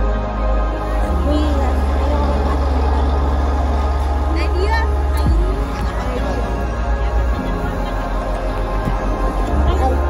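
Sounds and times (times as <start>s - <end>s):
loud low rumble: 0.0s - 10.0s
faint pitched sounds: 0.8s - 10.0s.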